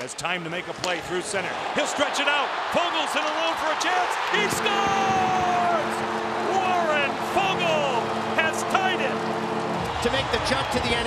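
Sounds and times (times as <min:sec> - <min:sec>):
crowd cheering: 0:00.0 - 0:11.0
arena goal horn: 0:04.3 - 0:10.7.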